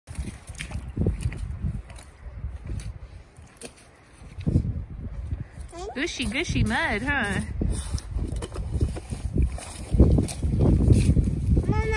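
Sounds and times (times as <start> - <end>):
boots squelching in wet mud: 0.1 - 11.9.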